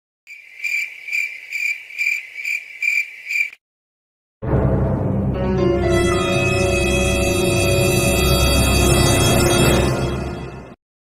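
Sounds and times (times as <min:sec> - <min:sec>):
insect trilling: 0:00.3 - 0:03.6.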